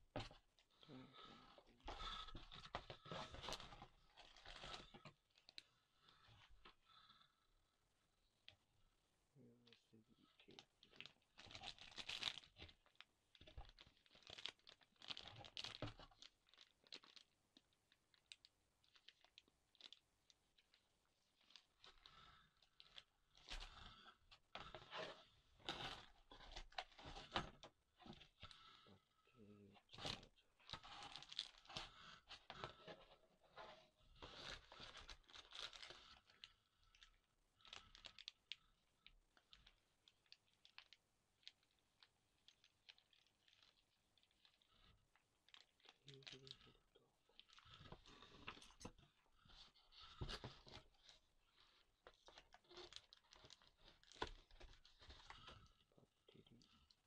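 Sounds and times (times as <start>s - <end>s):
packaging rustling and crinkling: 0.1s - 7.1s, 10.5s - 28.8s, 29.8s - 55.8s.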